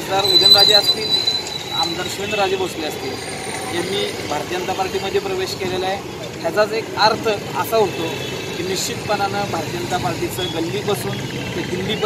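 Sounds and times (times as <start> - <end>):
street traffic hum: 0.0 - 12.0
man talking: 3.8 - 12.0.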